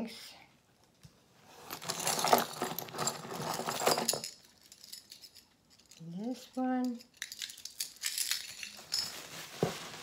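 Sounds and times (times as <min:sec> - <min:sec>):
metal chain clinking and jangling: 0:01.6 - 0:09.2.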